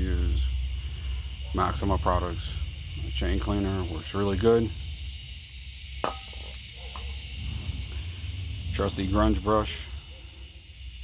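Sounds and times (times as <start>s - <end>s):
steady high hiss: 0.0s - 11.0s
low rumble: 7.2s - 10.0s.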